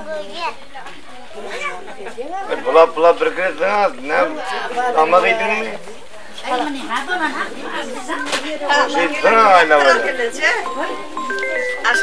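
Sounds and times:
crowd talking: 0.0 - 12.0
high-pitched voices: 8.1 - 12.0.

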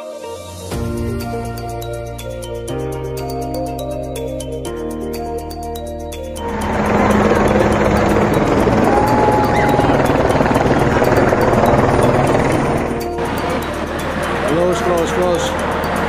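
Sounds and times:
music: 0.0 - 16.0
helicopter rotor and engine: 5.2 - 16.0.

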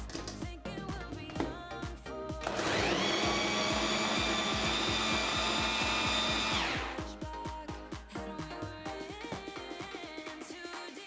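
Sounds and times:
food chopper motor whining: 2.4 - 7.0.

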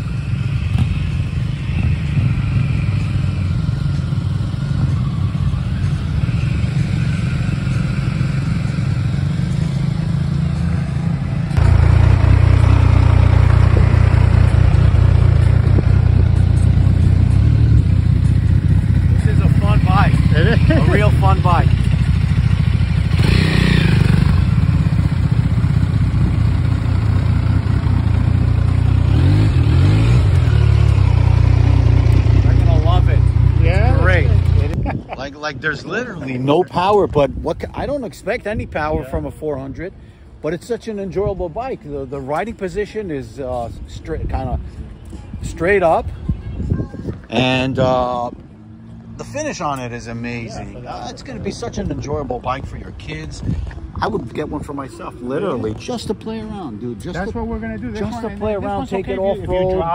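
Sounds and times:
motorcycle engine rumble: 0.0 - 37.9.

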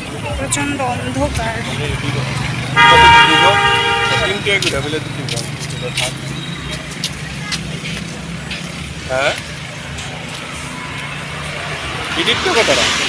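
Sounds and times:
street traffic: 0.0 - 13.0.

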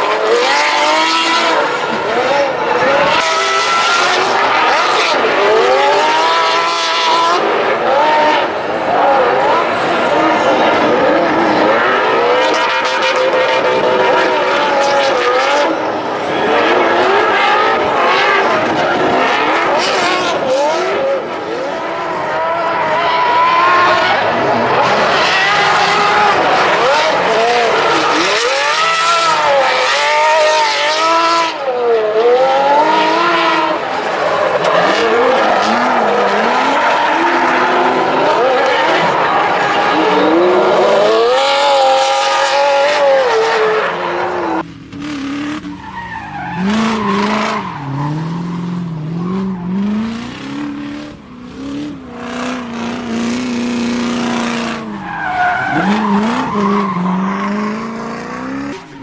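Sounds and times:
car engine revving hard: 0.0 - 59.0
tyres squealing and skidding: 0.0 - 59.0.

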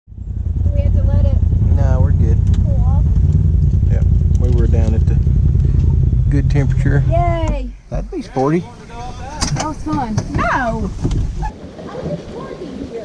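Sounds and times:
utility vehicle engine running: 0.1 - 11.5
voices talking: 0.6 - 13.0.

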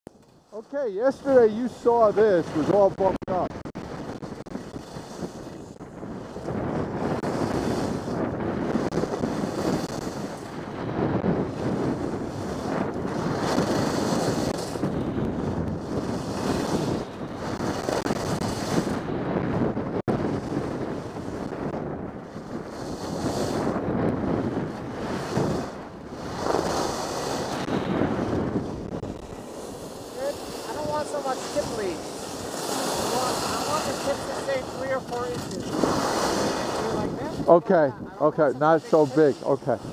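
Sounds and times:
wind rushing over microphone: 0.1 - 39.9
skis running on snow: 12.4 - 14.8, 15.8 - 17.0, 25.0 - 28.4, 29.0 - 37.0.

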